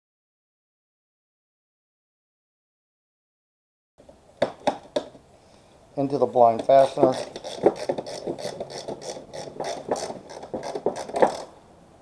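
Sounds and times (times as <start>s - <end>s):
sharp clicks of screw turning: 6.6s - 11.5s.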